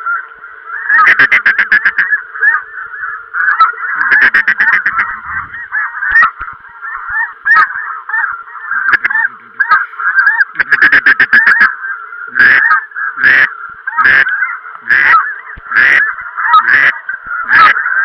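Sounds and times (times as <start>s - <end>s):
geese honking: 0.0s - 18.0s.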